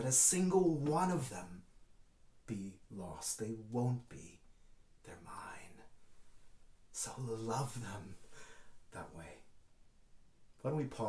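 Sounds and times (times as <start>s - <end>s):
man whispering: 2.5s - 6.0s, 6.9s - 9.6s.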